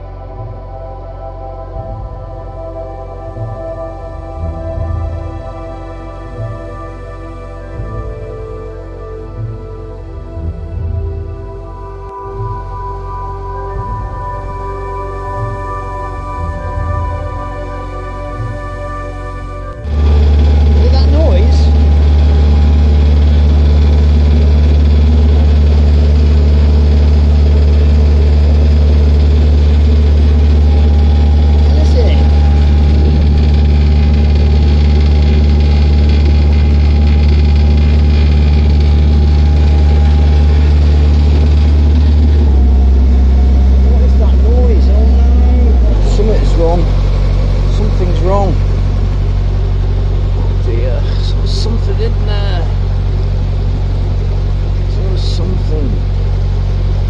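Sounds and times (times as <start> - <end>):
boat diesel engine droning: 0.0 - 57.0.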